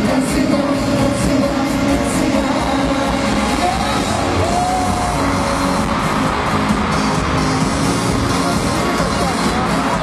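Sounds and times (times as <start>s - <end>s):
loud live concert music: 0.0s - 10.0s.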